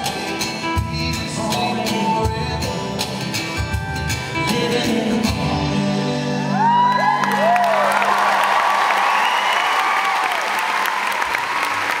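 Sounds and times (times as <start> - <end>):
audience applause: 6.6 - 12.0
whistles and cheers: 6.6 - 12.0.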